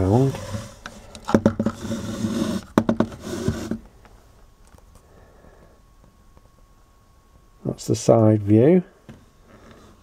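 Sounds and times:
instrument case scraping on table: 0.0s - 3.8s.

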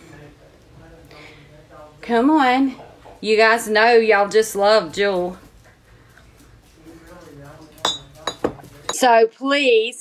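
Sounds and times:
ceramic mug clinking: 7.8s - 9.0s.

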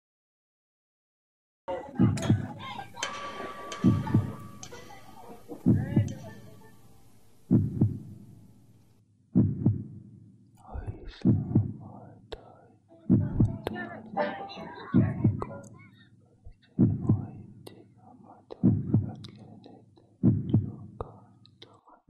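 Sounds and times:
slow heartbeat thumps: 2.0s - 4.9s, 5.5s - 6.4s, 7.4s - 8.6s, 9.3s - 13.9s, 14.9s - 15.6s, 16.5s - 17.7s, 18.5s - 21.3s.

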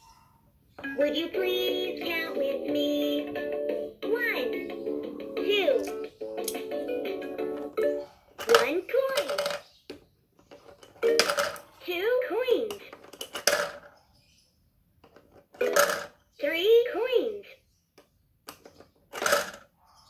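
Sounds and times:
recorded cartoon voice speaking: 1.0s - 3.3s, 4.0s - 4.8s, 5.4s - 5.9s, 8.5s - 9.4s, 11.8s - 12.8s, 16.4s - 17.6s
toy clicks and beeps: 7.6s - 9.6s, 10.9s - 11.6s, 15.6s - 16.1s.

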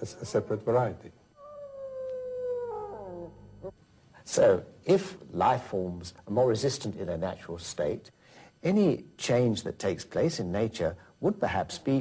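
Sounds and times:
wolf howling: 1.4s - 3.8s.

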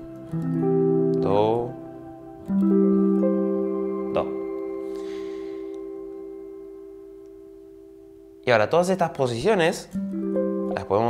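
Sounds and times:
electric guitar chord ringing: 0.0s - 8.5s, 10.0s - 11.0s.

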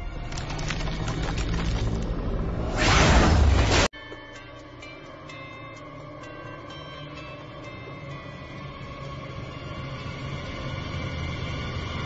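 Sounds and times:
horror film drone: 0.0s - 12.0s.

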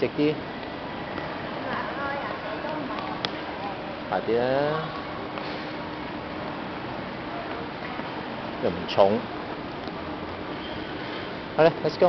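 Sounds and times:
light footsteps: 4.8s - 12.0s.

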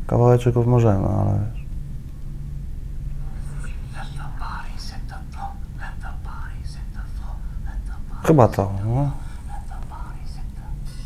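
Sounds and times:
low steady hum: 0.0s - 11.0s
person whispering: 3.2s - 11.0s.

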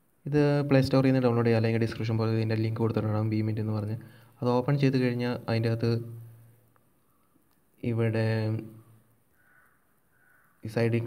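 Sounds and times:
man speaking: 0.2s - 6.4s, 7.8s - 8.9s, 10.6s - 11.0s.

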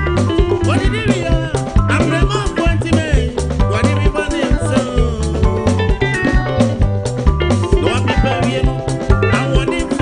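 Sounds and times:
bass guitar: 0.0s - 10.0s
drums: 0.0s - 10.0s
electric guitar: 0.0s - 10.0s
keyboards: 0.0s - 10.0s.

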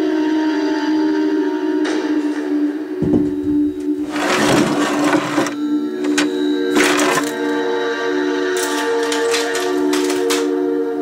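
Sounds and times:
droning background music: 0.0s - 11.0s
wooden drawer scraping open: 3.9s - 7.4s.

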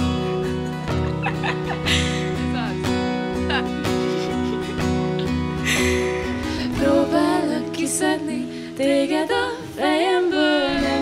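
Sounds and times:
acoustic guitar strummed: 0.0s - 8.7s
person speaking: 2.4s - 5.3s.

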